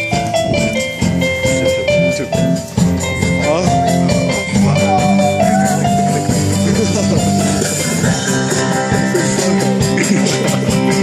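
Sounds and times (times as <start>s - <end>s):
drums: 0.0s - 11.0s
guitar: 0.0s - 11.0s
live band playing: 0.0s - 11.0s.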